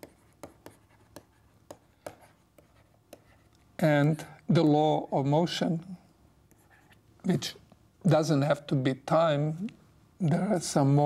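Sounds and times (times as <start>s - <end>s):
stylus tapping on tablet: 0.0s - 3.3s.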